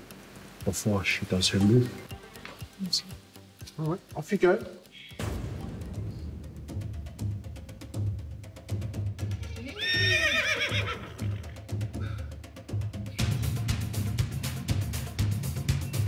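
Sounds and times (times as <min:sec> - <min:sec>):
background music with steady beat: 0:00.0 - 0:16.0
horse whinny: 0:09.4 - 0:11.6.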